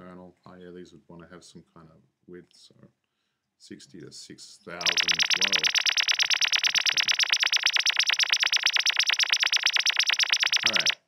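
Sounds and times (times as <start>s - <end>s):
fast pulsing electronic warble: 4.8s - 11.0s.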